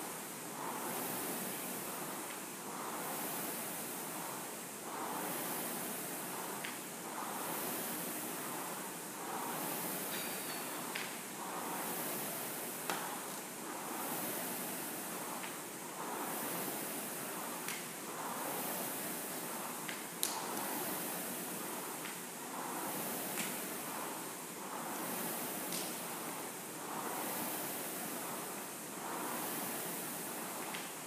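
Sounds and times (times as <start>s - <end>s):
rowing machine flywheel whooshing: 0.0s - 31.0s.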